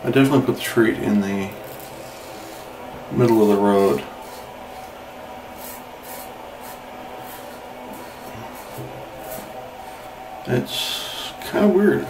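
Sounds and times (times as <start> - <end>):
razor scraping stubble: 1.6 - 10.1.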